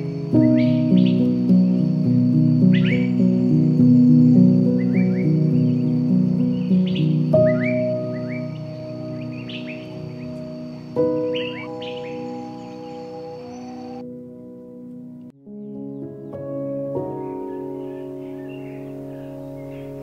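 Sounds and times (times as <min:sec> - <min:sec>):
small birds chirping: 0:00.0 - 0:14.0, 0:15.5 - 0:20.0
soft slow piano music: 0:00.0 - 0:20.0.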